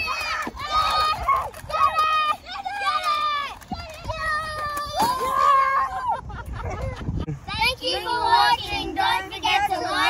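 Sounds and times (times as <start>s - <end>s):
children yelling: 0.0s - 6.3s.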